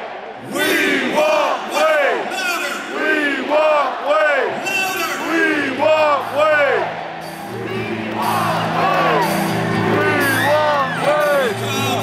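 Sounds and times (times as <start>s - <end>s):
crowd chanting in unison: 0.0s - 10.5s.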